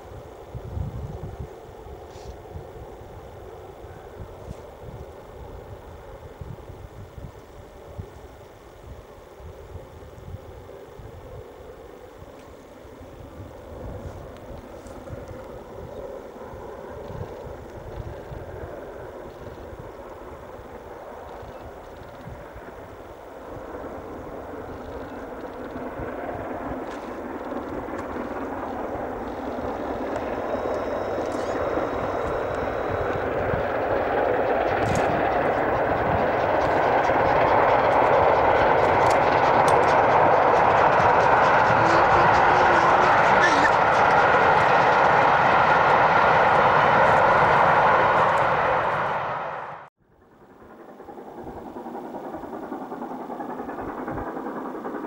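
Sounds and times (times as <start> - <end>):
wind buffeting microphone: 0.0 - 11.6, 12.2 - 55.0
train running: 14.1 - 55.0.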